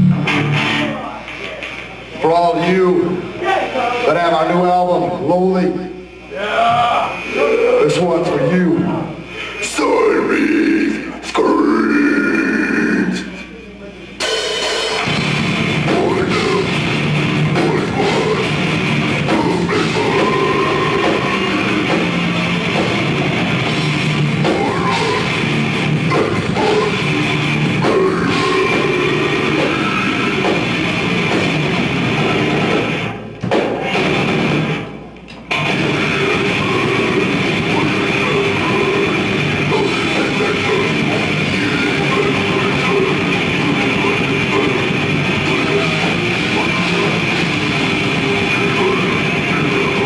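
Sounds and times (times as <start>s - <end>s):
distorted electric guitars: 0.0s - 50.0s
drums: 0.0s - 50.0s
deep guttural growl: 15.9s - 31.0s.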